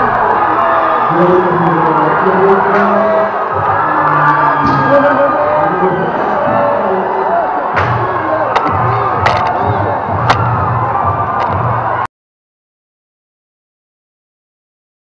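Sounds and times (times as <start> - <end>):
crowd cheering and singing: 0.0 - 12.1
music playing: 0.0 - 12.1.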